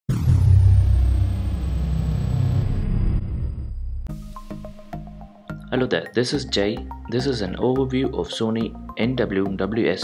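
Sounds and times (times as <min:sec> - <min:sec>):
deep steady rumble: 0:00.1 - 0:04.1
faint high falling tone: 0:00.1 - 0:04.1.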